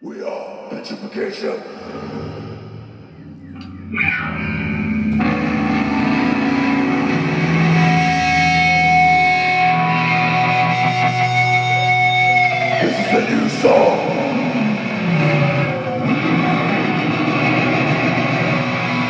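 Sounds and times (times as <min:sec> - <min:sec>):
droning electric guitars and bass: 0:01.6 - 0:19.0
high ringing tones: 0:02.7 - 0:10.0.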